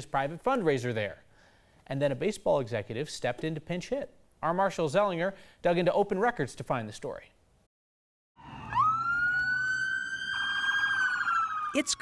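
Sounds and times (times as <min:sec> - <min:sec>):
police siren wailing: 0:08.4 - 0:12.0.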